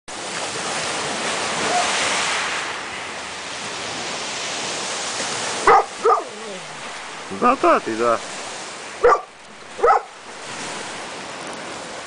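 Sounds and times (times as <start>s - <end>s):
sea surf washing: 0.1s - 12.0s.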